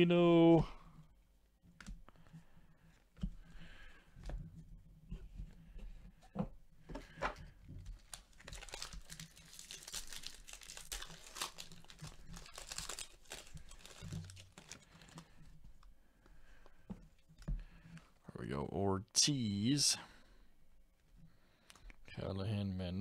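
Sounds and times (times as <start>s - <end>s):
foil wrapper tearing and crinkling: 8.0s - 15.2s.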